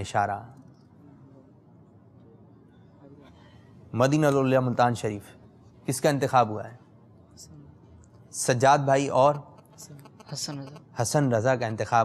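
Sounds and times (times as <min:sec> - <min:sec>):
faint murmur of voices: 0:00.9 - 0:03.9.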